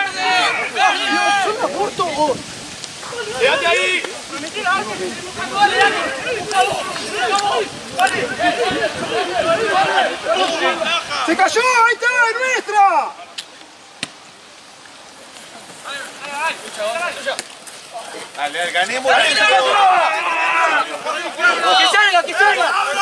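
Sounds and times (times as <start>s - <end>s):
voices shouting: 0.0s - 23.0s.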